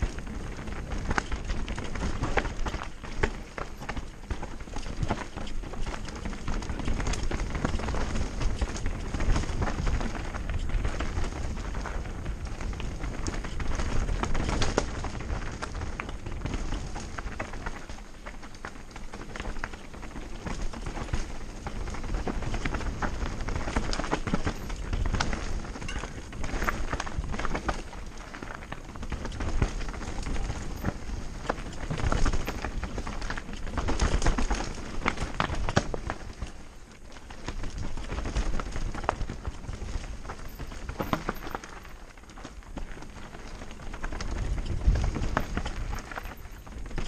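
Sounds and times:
bike clattering and rattling: 0.0 - 47.0
wind rumbling on microphone: 0.0 - 47.0.

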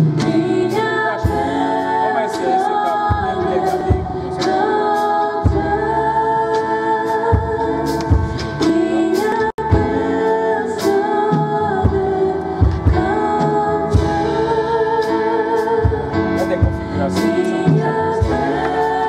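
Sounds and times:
keyboard accompaniment: 0.0 - 19.0
women singing in harmony: 0.0 - 19.0.

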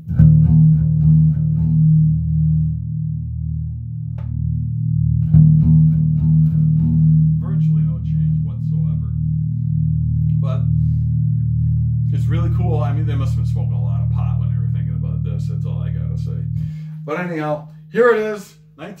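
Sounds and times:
electric bass riff: 0.0 - 19.0.

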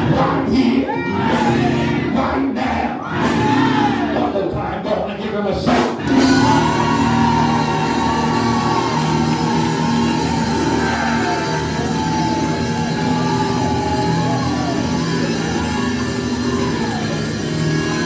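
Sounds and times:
church band playing: 0.0 - 18.0.

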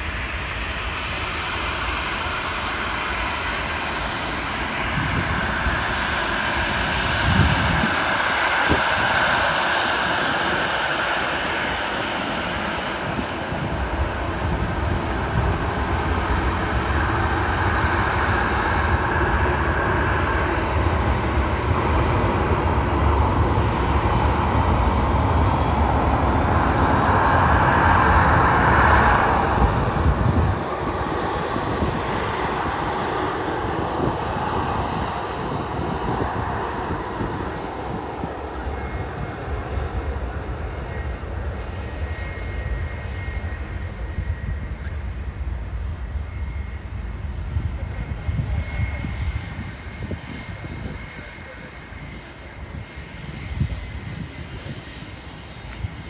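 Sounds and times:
jet engines whining: 0.0 - 56.0.

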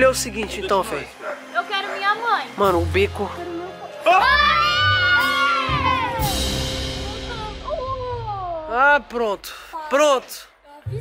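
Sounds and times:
background music: 0.0 - 11.0
people screaming in fright: 4.0 - 6.6.

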